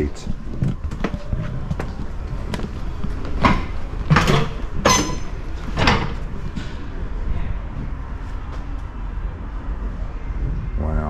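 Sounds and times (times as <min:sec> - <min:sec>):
footsteps on metal steps: 0:00.2 - 0:06.9.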